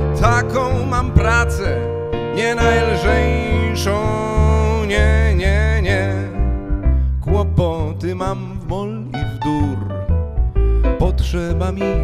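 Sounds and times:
man singing: 0:00.0 - 0:06.6, 0:07.2 - 0:10.0, 0:10.8 - 0:12.0
double bass notes: 0:00.0 - 0:12.0
keyboard accompaniment: 0:00.0 - 0:12.0.

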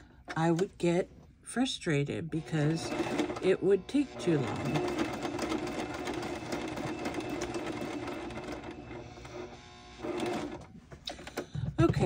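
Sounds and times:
electric sewing machine stitching: 0:02.4 - 0:11.4.

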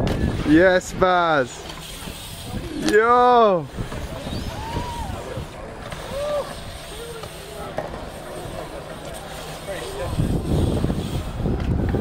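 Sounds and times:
faint voices and calls: 0:03.6 - 0:10.4
wind rumble on microphone: 0:03.7 - 0:06.4, 0:10.0 - 0:12.0.

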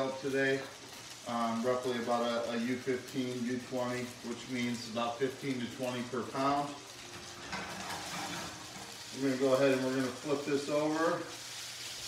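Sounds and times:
noodles sizzling in skillet: 0:00.0 - 0:12.0.

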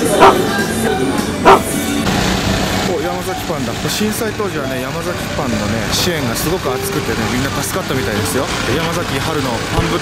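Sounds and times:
background music: 0:00.0 - 0:08.8.

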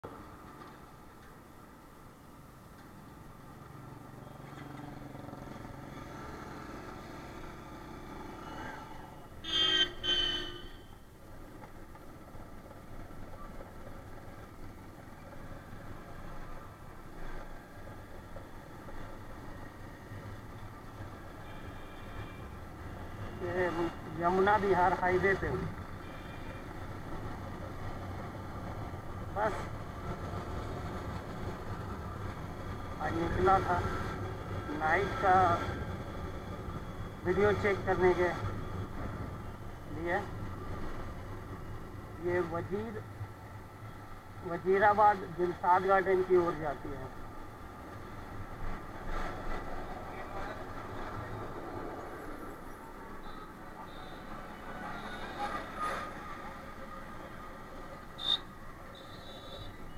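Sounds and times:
road noise: 0:00.0 - 0:59.9
vehicle horn honking: 0:09.4 - 0:10.9, 0:58.2 - 0:59.8.

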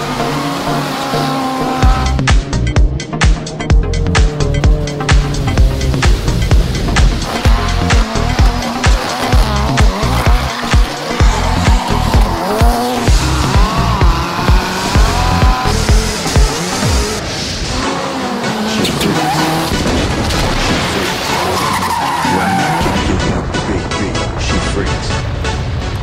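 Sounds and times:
tyres squealing: 0:00.0 - 0:03.2, 0:04.2 - 0:23.0
rally car engine revving: 0:00.0 - 0:26.0
music with thumping beat: 0:01.8 - 0:17.2.

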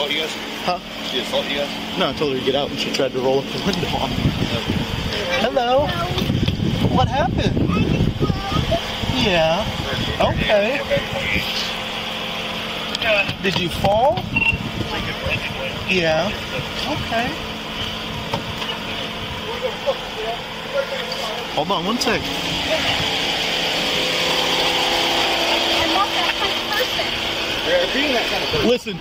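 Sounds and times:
vehicle engine idling: 0:00.0 - 0:29.0.

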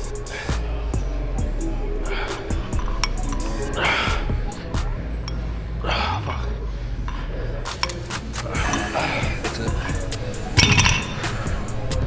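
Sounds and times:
background music with steady beat: 0:00.0 - 0:12.0
metallic clink of dumbbells: 0:10.6 - 0:11.3.

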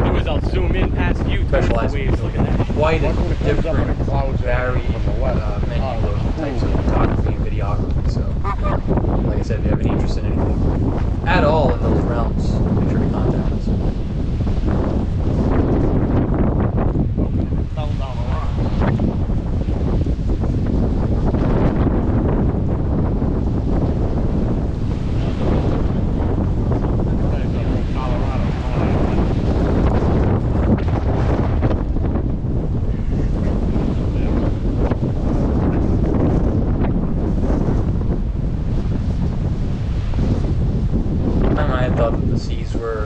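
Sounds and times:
storm wind buffeting microphone: 0:00.0 - 0:43.0.

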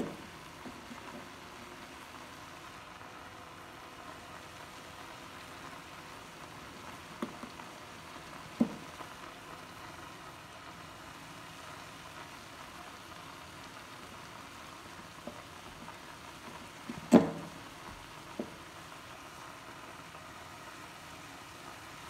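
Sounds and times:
greens dry-frying hiss: 0:00.0 - 0:22.0.

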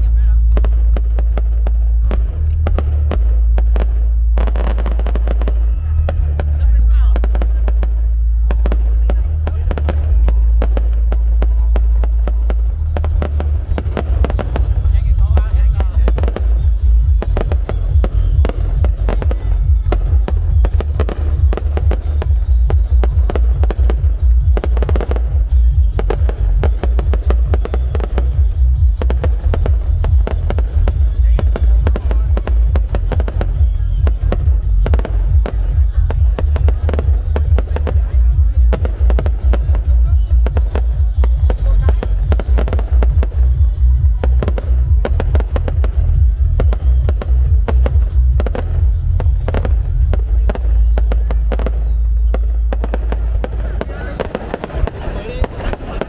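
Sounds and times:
heavy low rumble: 0:00.0 - 0:56.0.

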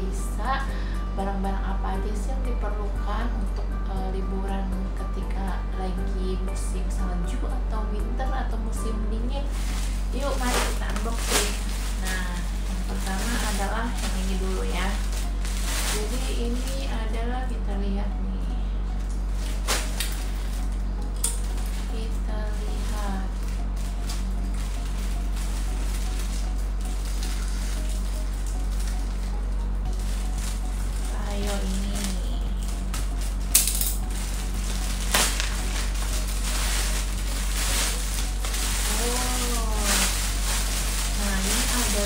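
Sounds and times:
steady low hum: 0:00.0 - 0:42.0
plastic bag rustling: 0:08.7 - 0:17.8, 0:19.0 - 0:42.0.

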